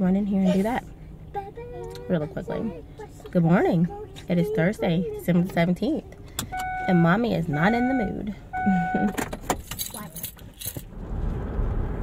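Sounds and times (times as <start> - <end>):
car engine rumble: 0.0 - 12.0
road noise inside car: 0.0 - 12.0
keys jingling: 9.1 - 10.9.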